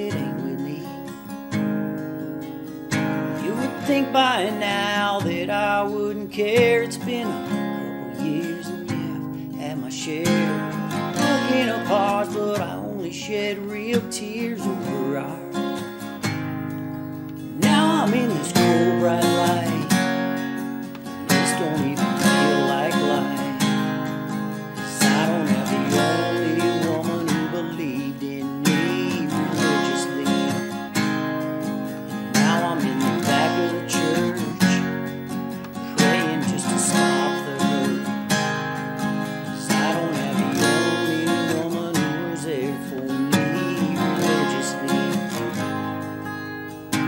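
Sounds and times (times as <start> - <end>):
acoustic guitar strumming chords: 0.0 - 47.0.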